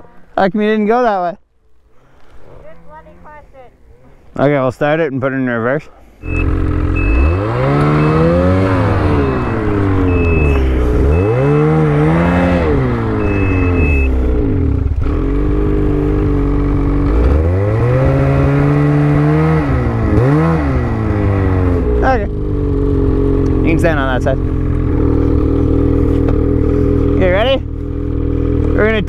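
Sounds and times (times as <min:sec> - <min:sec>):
high short beeps: 0:06.2 - 0:14.2
snowmobile engine revving: 0:06.2 - 0:29.0.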